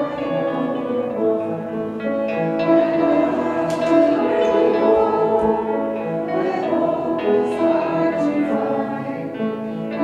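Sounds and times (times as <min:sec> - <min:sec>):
instrumental hymn accompaniment: 0:00.0 - 0:10.0.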